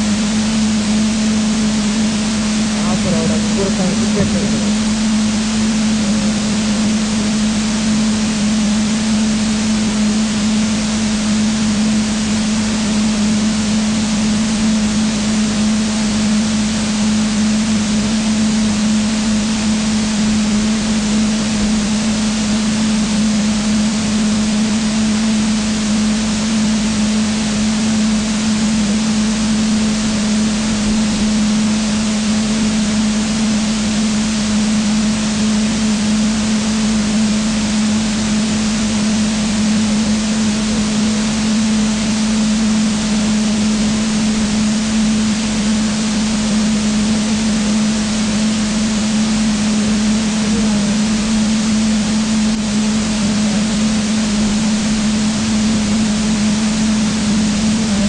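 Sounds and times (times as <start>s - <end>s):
low hum: 0.0s - 58.0s
loud steady hiss: 1.7s - 11.9s.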